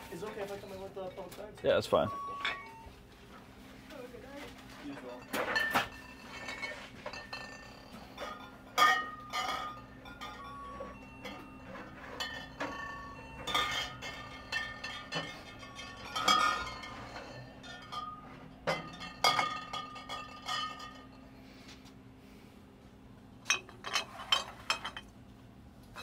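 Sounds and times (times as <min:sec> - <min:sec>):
steady low hum: 0:00.0 - 0:26.0
glass bottles clinking: 0:00.3 - 0:02.8, 0:04.8 - 0:21.2, 0:23.4 - 0:25.1.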